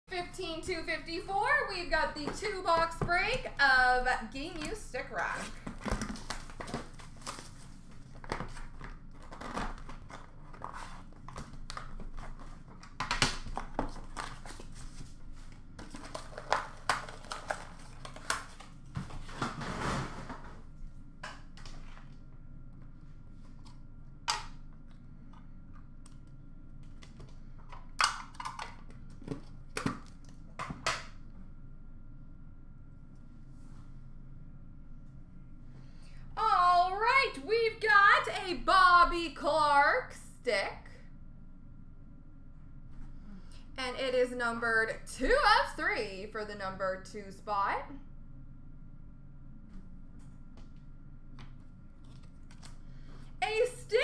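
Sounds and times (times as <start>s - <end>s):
packaging crinkling and rustling: 5.2s - 20.6s, 51.4s - 53.1s.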